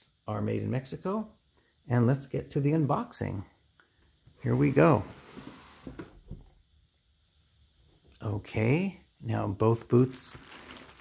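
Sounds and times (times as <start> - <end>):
cardboard lid scraping rustle: 4.4 - 6.2.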